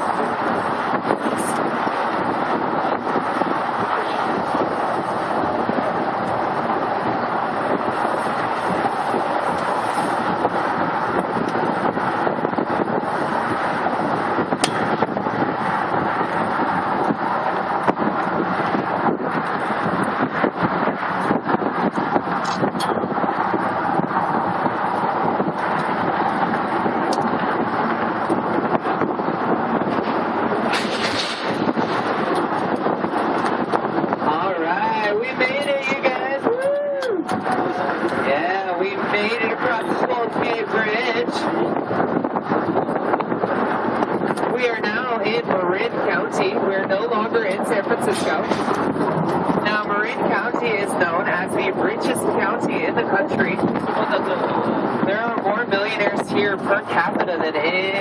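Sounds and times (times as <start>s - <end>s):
road and traffic noise: 0.0s - 58.0s
wind rushing over microphone: 0.0s - 58.0s.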